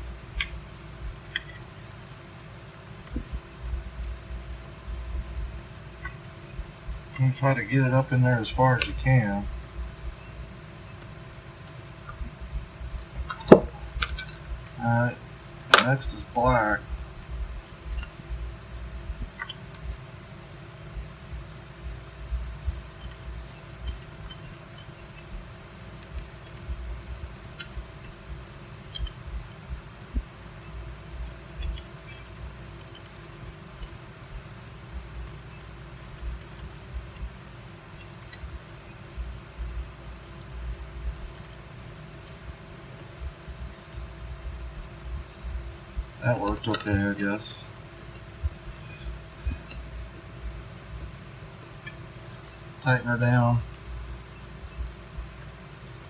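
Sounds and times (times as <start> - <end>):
steady low hum: 0.0 - 56.0
small metallic clicks and clinks: 1.2 - 5.2, 6.0 - 8.2, 13.0 - 14.9, 17.2 - 20.1, 22.6 - 50.3, 51.0 - 53.8.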